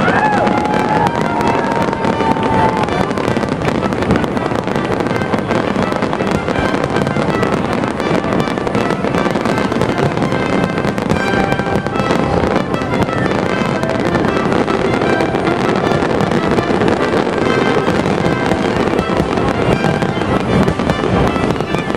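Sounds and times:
aerial fireworks bangs and crackling: 0.0s - 21.9s.

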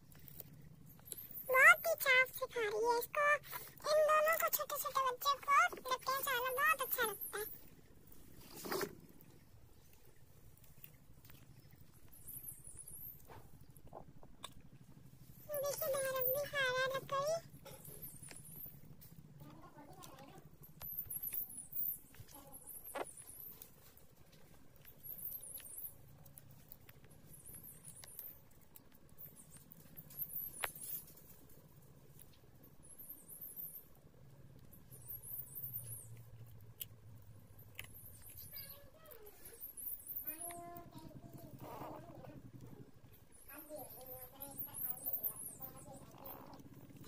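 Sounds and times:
puppies licking and mouthing soil: 0.0s - 47.0s.

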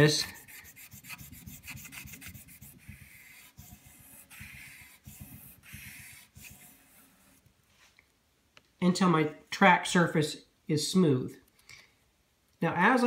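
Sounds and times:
sandpaper scratching on rim: 0.0s - 7.4s.

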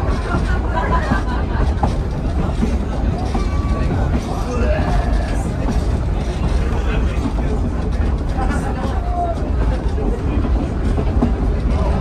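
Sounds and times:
passengers chatting quietly: 0.0s - 12.0s
railcar wheels rumbling on rails: 0.0s - 12.0s.

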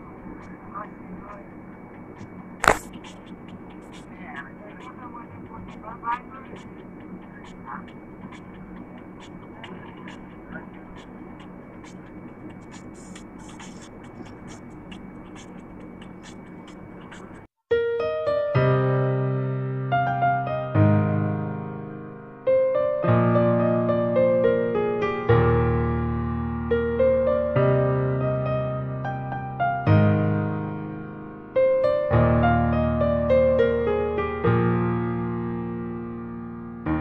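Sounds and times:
piano music: 0.0s - 37.0s
sharp click: 2.2s - 4.0s.

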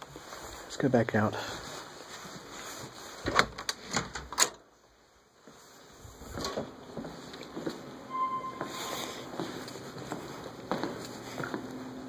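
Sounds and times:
footsteps on hard floor: 5.4s - 12.0s
faint steady tone: 8.1s - 9.3s.

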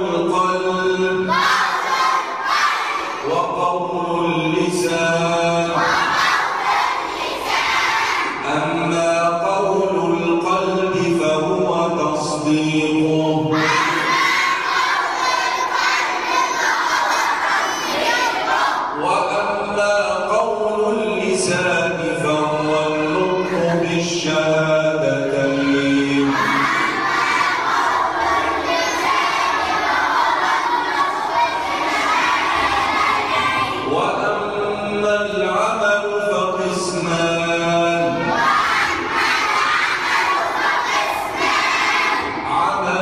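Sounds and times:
boys chanting in unison: 0.0s - 43.0s.

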